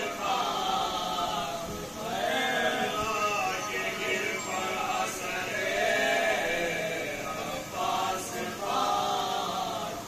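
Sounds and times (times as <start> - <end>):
man reciting into a microphone: 0.0 - 8.6
men chanting together: 0.0 - 10.0.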